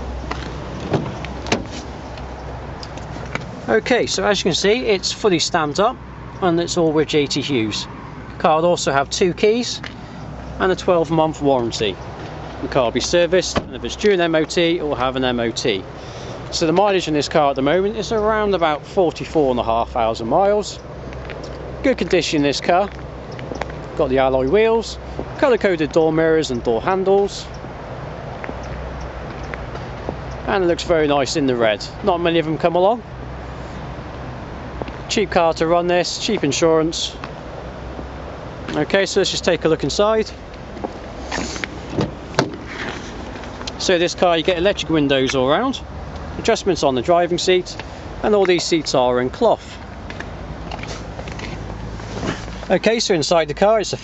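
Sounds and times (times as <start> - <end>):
low outdoor background rumble: 0.0 - 54.0
car door handle and latch clicks: 0.3 - 1.8.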